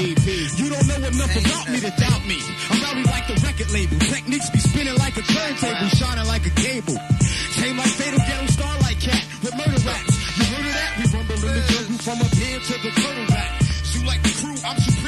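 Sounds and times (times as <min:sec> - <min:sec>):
hip hop beat with deep bass: 0:00.0 - 0:15.0
man rapping: 0:00.0 - 0:15.0.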